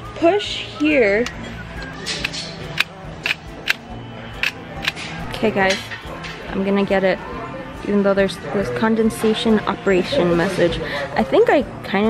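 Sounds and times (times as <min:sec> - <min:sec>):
sharp plastic clicks: 0:01.2 - 0:03.8, 0:04.4 - 0:05.1.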